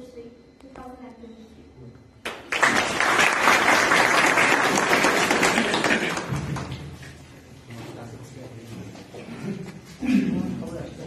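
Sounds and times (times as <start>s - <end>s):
audience applauding: 2.3s - 7.1s.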